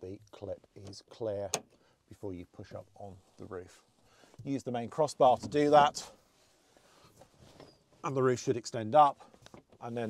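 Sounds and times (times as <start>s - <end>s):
faint fabric rustling: 2.6s - 8.4s.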